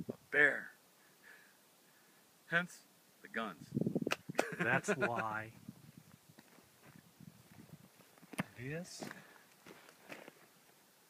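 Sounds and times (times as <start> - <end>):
faint scuffs and soft knocks: 5.9 - 10.8.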